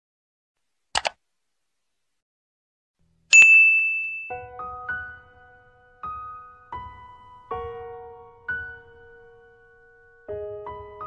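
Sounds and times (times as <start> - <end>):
high notification bell ding: 3.3 - 4.5.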